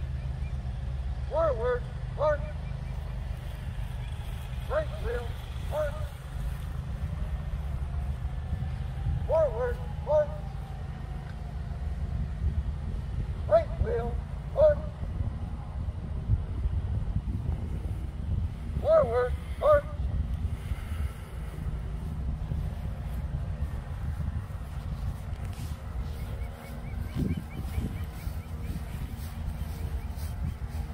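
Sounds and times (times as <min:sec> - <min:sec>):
wind rumble on microphone: 0:00.0 - 0:30.9
person shouting commands: 0:01.2 - 0:02.6, 0:04.7 - 0:06.2, 0:09.2 - 0:10.6, 0:13.4 - 0:15.1, 0:18.8 - 0:20.1.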